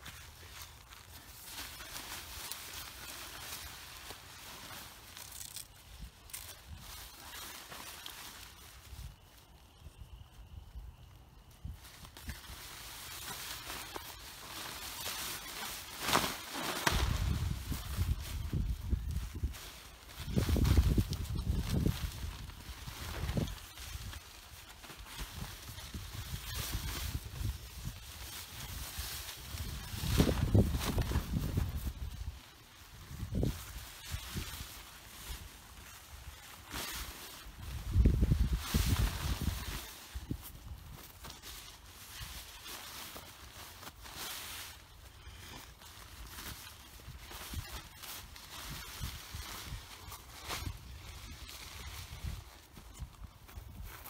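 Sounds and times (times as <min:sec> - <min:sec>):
tent fabric rustling and crinkling: 0:00.0 - 0:54.0.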